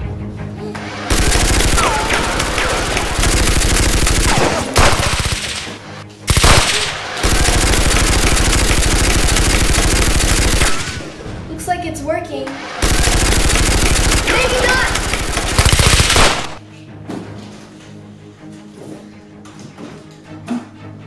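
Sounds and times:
automatic gunfire: 0:01.1 - 0:11.2, 0:12.8 - 0:16.6
person speaking: 0:14.3 - 0:15.1.

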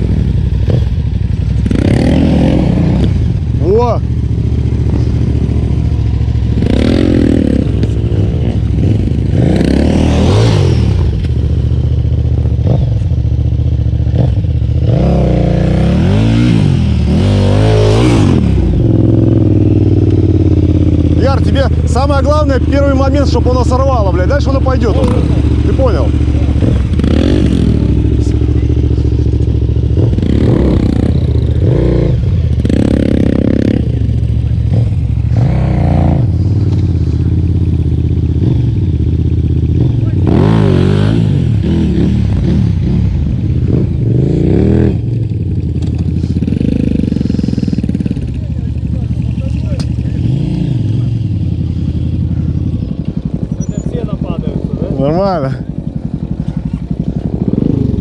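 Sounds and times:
motorcycle engine revving: 0:00.0 - 0:58.0
motorcycle engines droning: 0:00.0 - 0:58.0.

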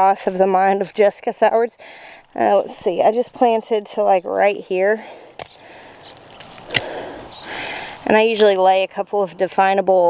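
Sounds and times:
soft rustle: 0:02.0 - 0:08.6.

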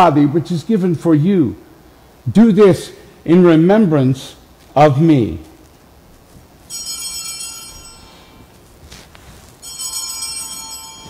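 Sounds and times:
small altar bells ringing: 0:06.7 - 0:08.6, 0:09.3 - 0:11.0.

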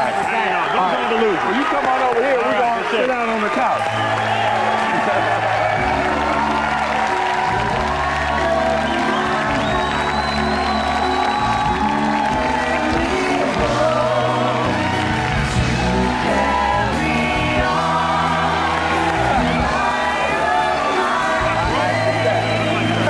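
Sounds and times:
audience cheering and clapping: 0:00.0 - 0:23.0
band playing upbeat music: 0:00.0 - 0:23.0.

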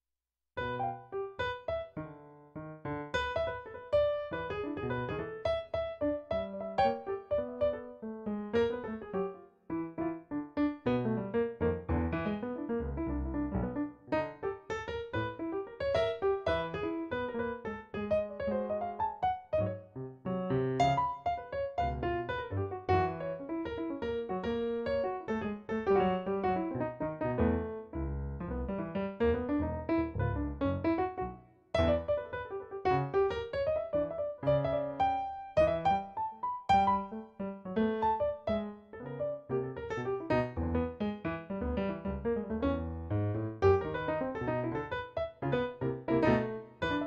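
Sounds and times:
piano playing notes and chords: 0:00.6 - 0:47.0.

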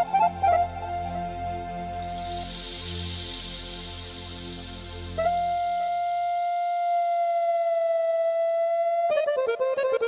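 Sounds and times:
keyboard accompanying chords: 0:00.0 - 0:10.0.

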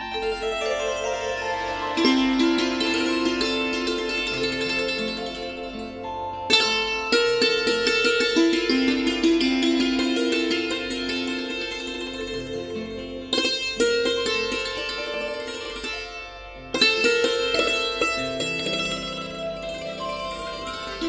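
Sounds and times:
plucked string instrument melody: 0:00.0 - 0:21.0
sharp string strikes: 0:00.0 - 0:21.0.

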